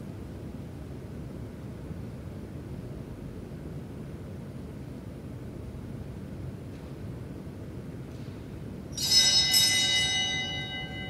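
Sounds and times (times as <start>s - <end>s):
small bell ringing: 8.9s - 11.0s.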